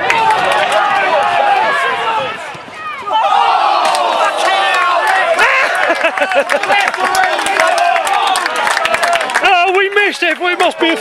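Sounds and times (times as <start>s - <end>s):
football crowd shouting: 0.0s - 11.0s.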